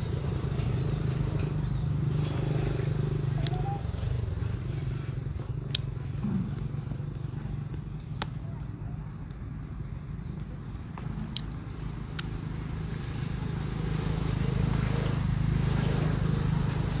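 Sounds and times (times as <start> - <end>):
low engine hum: 0.0 - 17.0.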